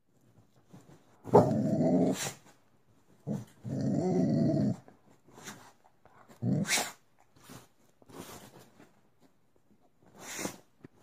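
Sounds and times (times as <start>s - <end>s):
dog growling: 1.3s - 2.4s, 3.2s - 4.9s.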